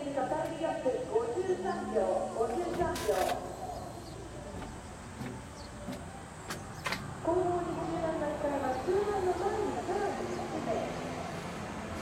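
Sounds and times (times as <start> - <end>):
indistinct talking: 0.0 - 5.0
outdoor background noise: 0.0 - 12.0.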